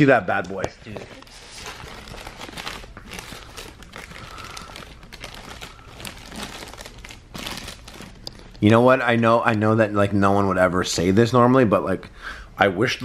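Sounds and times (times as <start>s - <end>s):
paper wrapper crinkling: 0.6s - 8.6s.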